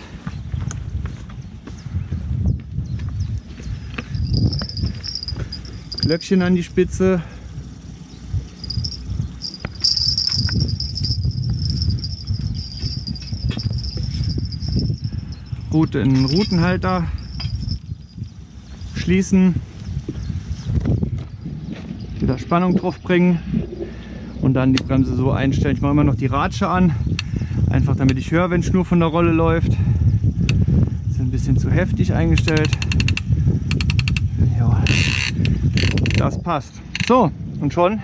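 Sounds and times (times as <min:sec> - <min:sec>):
footsteps on loose rocks: 0:02.6 - 0:06.2, 0:09.4 - 0:18.0
small bell tinkling: 0:04.1 - 0:06.6, 0:08.6 - 0:19.1.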